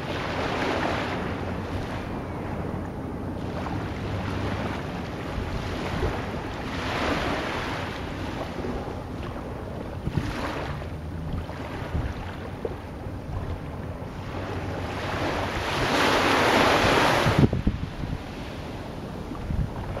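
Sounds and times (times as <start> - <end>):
waves washing in: 0.0 - 20.0
wind: 0.0 - 20.0.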